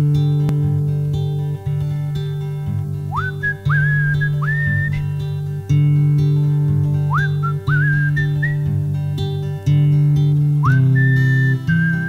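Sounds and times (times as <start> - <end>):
acoustic guitar picking: 0.0 - 12.0
whistled melody: 3.1 - 5.3, 7.1 - 8.8, 10.6 - 12.0.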